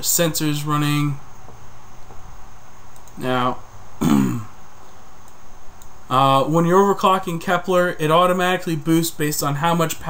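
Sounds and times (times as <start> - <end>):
background hiss: 0.0 - 10.0
faint high-pitched whine: 0.0 - 10.0.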